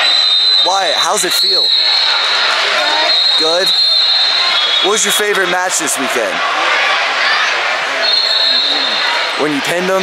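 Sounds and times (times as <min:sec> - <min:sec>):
many distant voices: 0:00.6 - 0:10.0.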